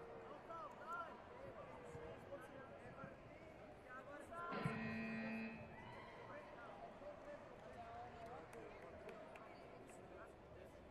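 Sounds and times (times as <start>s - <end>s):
crowd chatter and calls: 0.0s - 7.4s
electronic buzzer steady tone: 4.6s - 5.7s.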